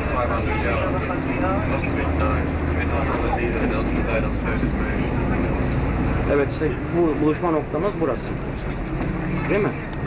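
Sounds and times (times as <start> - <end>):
indistinct voices talking: 0.0 - 5.7
bus engine and road rumble: 0.0 - 10.0.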